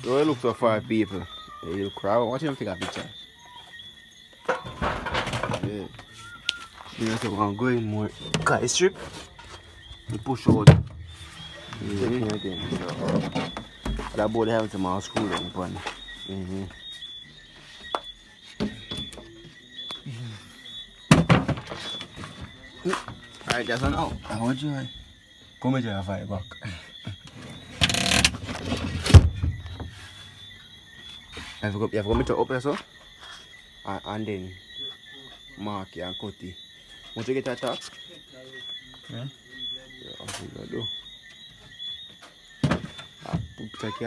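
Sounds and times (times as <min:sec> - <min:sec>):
board thumping into place: 0:10.4 - 0:11.1, 0:21.1 - 0:22.1, 0:28.2 - 0:29.9, 0:42.6 - 0:43.6
man speaking: 0:43.6 - 0:44.0.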